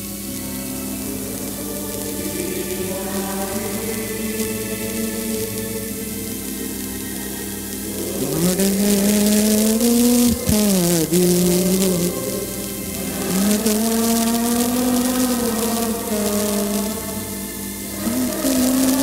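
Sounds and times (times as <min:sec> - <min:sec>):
slow church music: 0:00.0 - 0:19.0.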